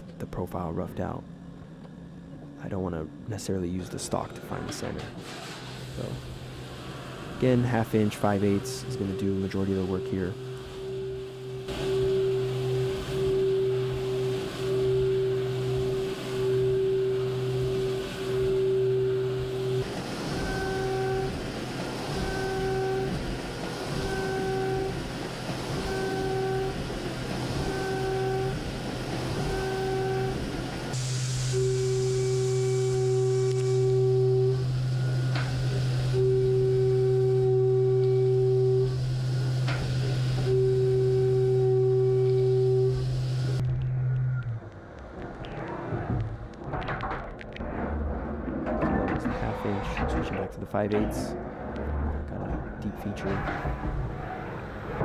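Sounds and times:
machine low hum: 0.0 - 55.0
metal cutting tone: 3.8 - 44.6
coolant spray hissing: 5.2 - 8.8, 30.4 - 33.8.

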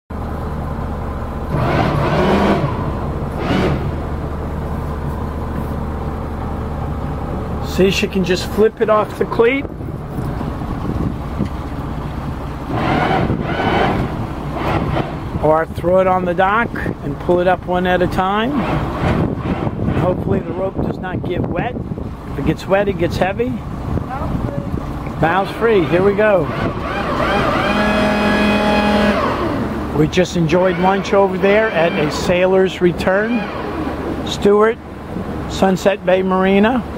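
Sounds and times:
boat engine idling: 0.1 - 36.9.

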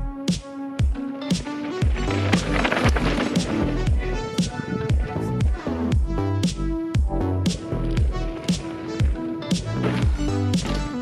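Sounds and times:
background music with drum beat: 0.2 - 11.0.

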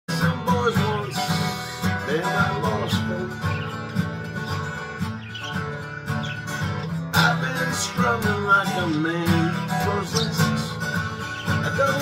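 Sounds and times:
acoustic guitar strumming: 0.1 - 12.0.

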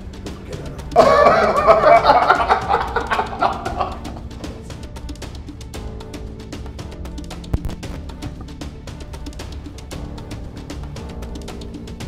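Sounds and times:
background music with soft beats: 0.0 - 12.0
men laughing: 0.9 - 4.4.

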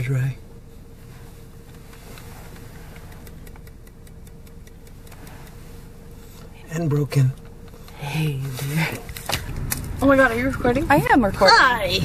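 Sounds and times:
low hum inside a car: 0.0 - 12.0.

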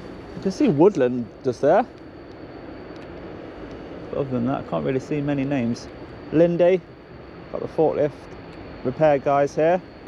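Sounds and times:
faint high whine: 0.0 - 10.0
low outdoor rumble: 0.0 - 10.0.

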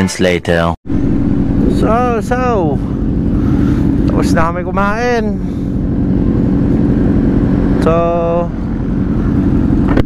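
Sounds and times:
motorcycle engine idling: 0.9 - 10.0.

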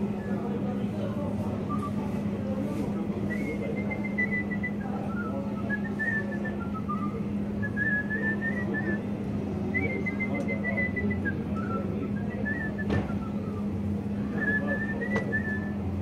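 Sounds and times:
man whistling a melody: 3.3 - 9.0, 9.7 - 15.9.

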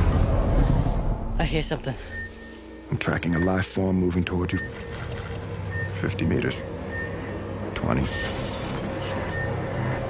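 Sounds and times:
low rumbling drone: 0.0 - 10.0.

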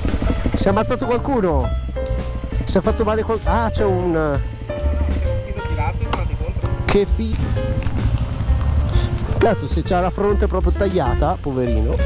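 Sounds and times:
background music with drum beat: 0.0 - 12.0
bass line: 0.0 - 12.0.

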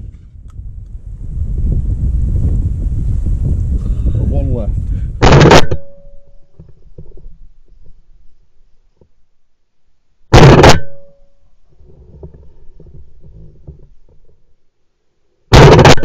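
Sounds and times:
wind rumbling on microphone: 0.0 - 8.1
shotgun shot: 5.2 - 6.0, 10.4 - 11.1, 15.5 - 16.0.

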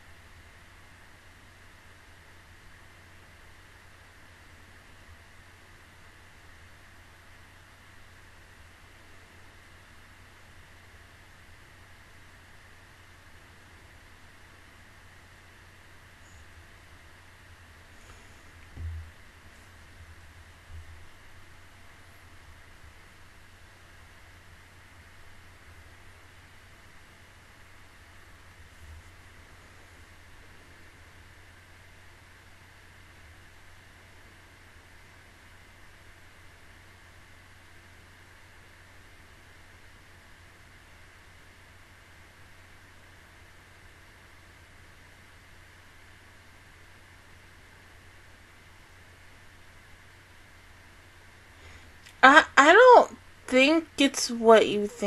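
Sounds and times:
microphone hum and hiss: 0.0 - 34.2.

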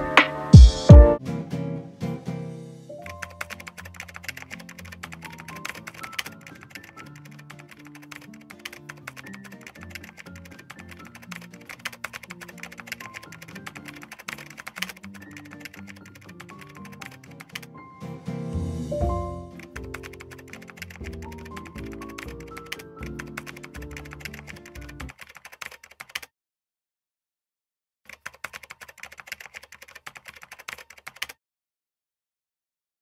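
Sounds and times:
background music: 0.0 - 25.1
phone keyboard clicks: 3.2 - 17.6, 28.1 - 31.4.

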